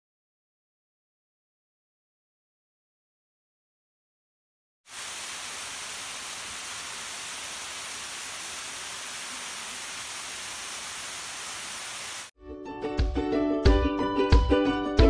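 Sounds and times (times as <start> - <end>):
small waterfall rushing: 4.9 - 12.3.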